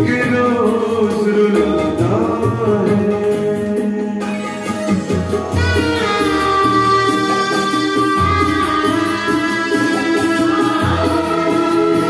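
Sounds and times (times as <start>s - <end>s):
orchestral accompaniment: 4.5s - 12.0s.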